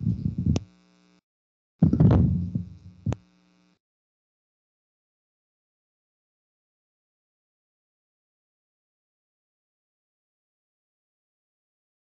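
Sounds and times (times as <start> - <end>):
low electrical hum: 0.0 - 1.2, 1.8 - 3.8
dull knock: 1.8 - 2.8.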